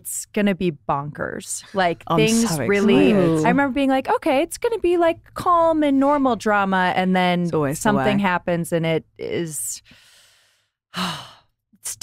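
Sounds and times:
woman sighing: 2.2 - 3.6.

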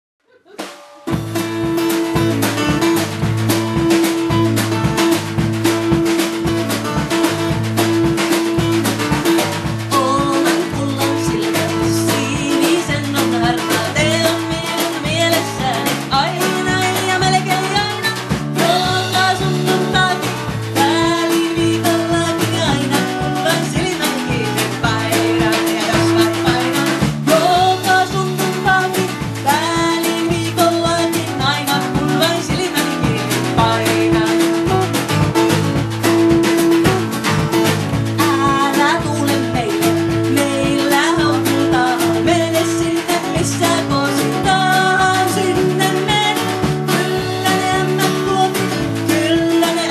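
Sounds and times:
drum kit: 0.3 - 49.9
woman singing: 0.4 - 49.9
strummed acoustic guitar: 0.6 - 49.9
electric bass: 1.1 - 49.9.

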